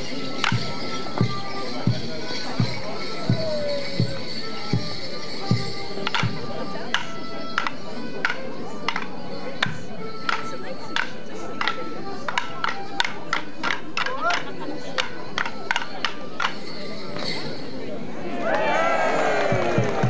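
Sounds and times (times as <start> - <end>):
band playing dance tune: 0.0 - 14.0
wooden sticks clashing: 5.5 - 17.6.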